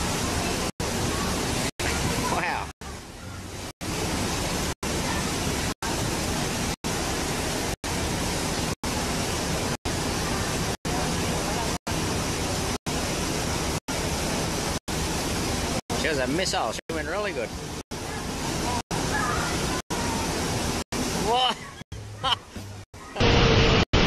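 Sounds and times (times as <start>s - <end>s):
water rushing down slide: 0.0s - 2.7s, 3.6s - 21.8s.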